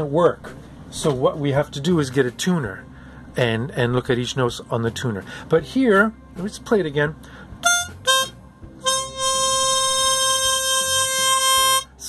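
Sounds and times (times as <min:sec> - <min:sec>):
harmonica octave note: 0:07.6 - 0:12.0.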